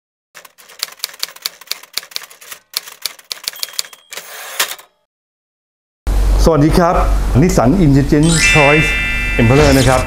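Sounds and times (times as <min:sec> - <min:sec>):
typewriter keys clacking: 0:00.4 - 0:04.8.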